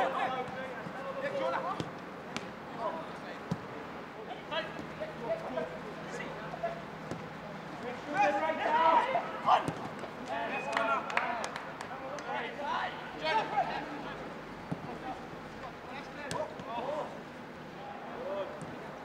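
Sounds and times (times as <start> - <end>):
players shouting short calls: 3.9 - 19.0.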